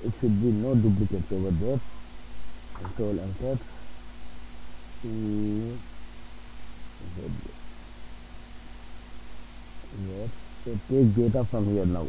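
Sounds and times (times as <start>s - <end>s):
man's voice murmuring: 0.0s - 1.9s, 2.8s - 3.7s, 5.0s - 5.8s, 7.0s - 7.6s, 10.0s - 12.0s
low electrical hum: 0.0s - 12.0s.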